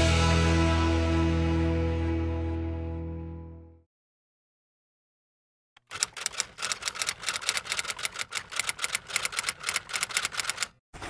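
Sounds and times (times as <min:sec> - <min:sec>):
typewriter keys clacking: 0:05.8 - 0:10.8.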